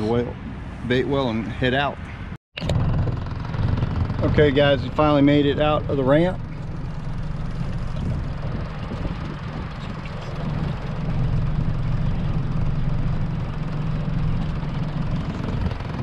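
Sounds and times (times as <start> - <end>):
wind noise: 0.0 - 5.8, 6.4 - 12.6, 14.4 - 16.0
water noise: 0.0 - 16.0
outboard motor droning: 2.6 - 16.0.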